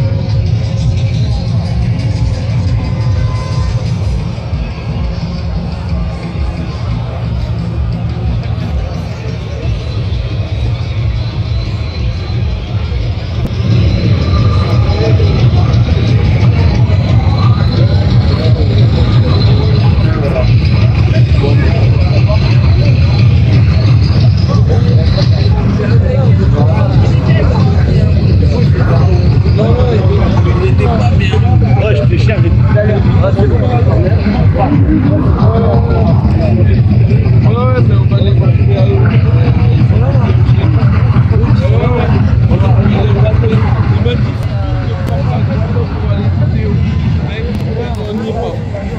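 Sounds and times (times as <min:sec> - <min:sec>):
loud steady low rumble: 0:00.0 - 0:48.9
people talking at once: 0:00.0 - 0:48.9
people's voices: 0:00.0 - 0:48.9.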